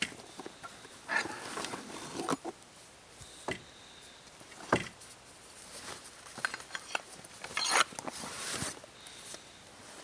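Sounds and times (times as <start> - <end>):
canvas rucksack rustling: 7.7 - 8.8.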